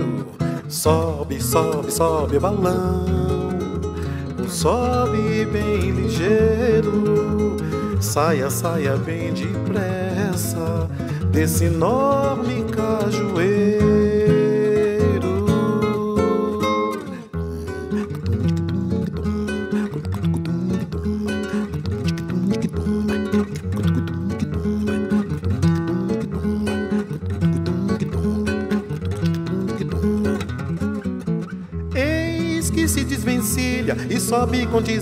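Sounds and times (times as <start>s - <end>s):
person singing: 0.0s - 23.5s, 24.2s - 25.3s, 26.0s - 27.1s, 27.8s - 30.5s, 31.9s - 35.0s
nylon-string acoustic guitar plucking: 0.0s - 35.0s.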